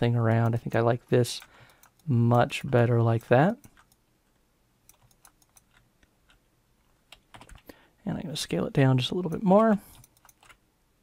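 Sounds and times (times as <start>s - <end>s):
computer keyboard clicks: 4.9s - 6.4s, 7.1s - 7.7s, 9.3s - 10.6s.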